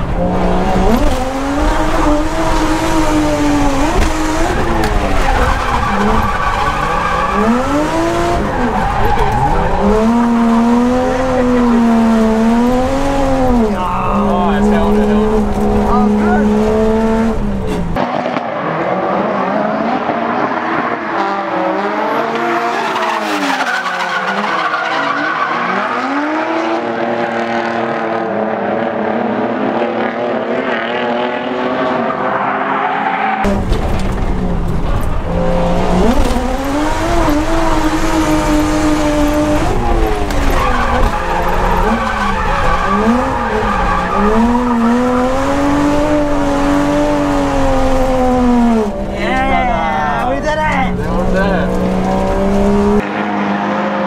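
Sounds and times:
car engine revving: 0.0s - 54.0s
tyres squealing: 36.0s - 46.8s.

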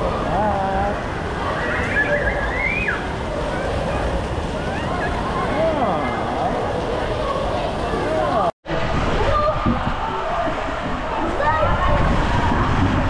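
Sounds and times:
voices calling out: 0.0s - 8.5s.

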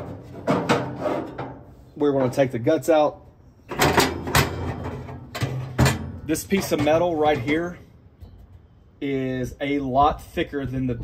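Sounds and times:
metal plate clanking: 0.0s - 1.7s, 3.7s - 7.7s
metal plate scraping slide: 0.0s - 1.9s.

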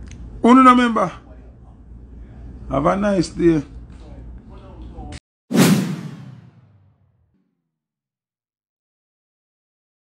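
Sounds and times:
whoosh swish: 5.5s - 6.9s.

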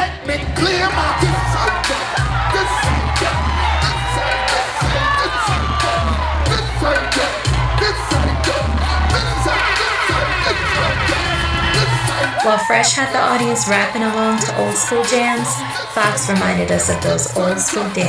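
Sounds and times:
crowd voices: 0.0s - 18.0s
heavy bass beat: 0.0s - 18.0s.

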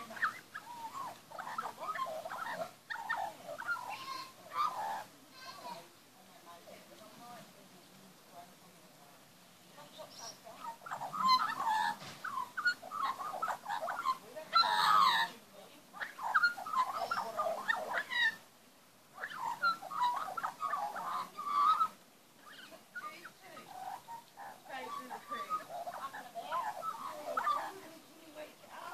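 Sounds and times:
magpie warbling song: 0.0s - 5.1s, 10.0s - 15.4s, 16.0s - 18.4s, 19.2s - 28.9s.

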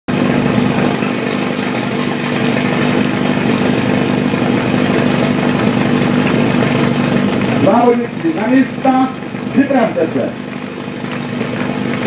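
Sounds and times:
pump engine idling: 0.1s - 12.0s.

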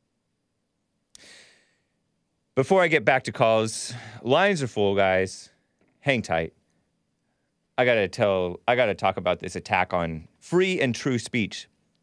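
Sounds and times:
man's short breath: 1.2s - 2.0s, 3.9s - 4.2s.

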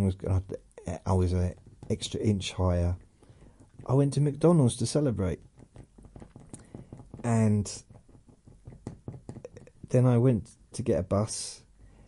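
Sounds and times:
faint light clicks and knocks: 1.4s - 10.0s.

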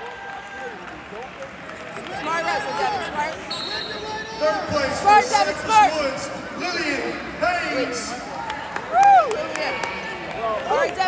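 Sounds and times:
crowd murmur in arena: 0.0s - 11.0s.

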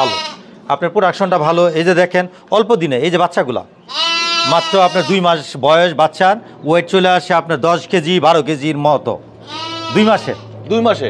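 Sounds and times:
sheep bleating: 0.0s - 0.4s, 3.9s - 5.4s, 9.4s - 10.6s.

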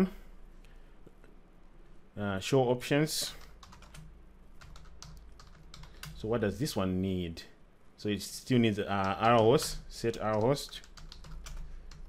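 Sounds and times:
faint low hum: 0.0s - 12.0s
computer keyboard typing: 3.4s - 6.2s, 9.0s - 12.0s.

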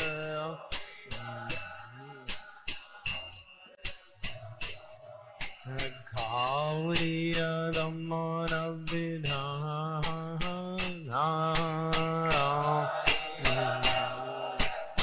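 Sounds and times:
man singing a devotional chant: 0.0s - 3.5s, 5.4s - 15.0s.

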